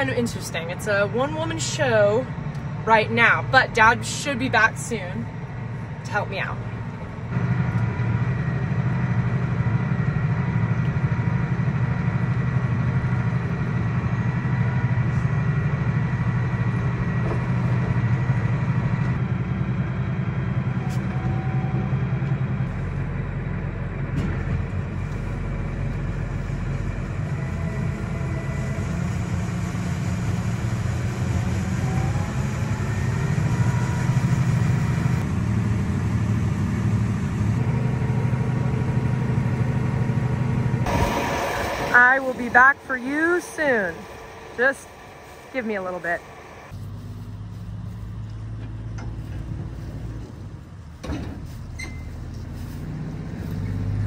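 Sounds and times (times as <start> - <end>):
tractor diesel engine drone: 0.0 - 54.0
auger unloading corn: 40.7 - 46.7.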